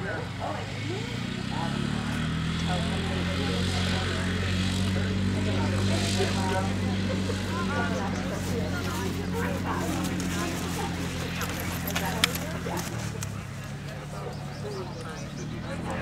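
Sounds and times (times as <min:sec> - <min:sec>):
motor engine drone: 0:00.0 - 0:16.0.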